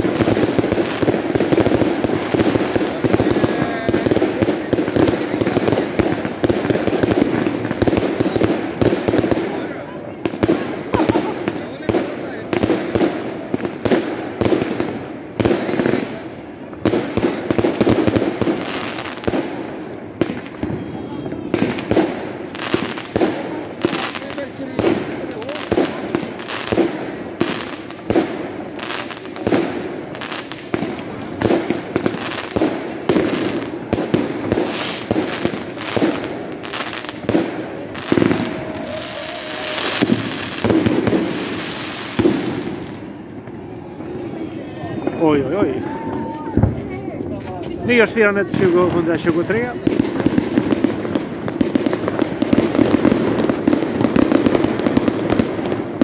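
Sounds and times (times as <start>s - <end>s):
fireworks bangs and crackling: 0.0s - 56.0s.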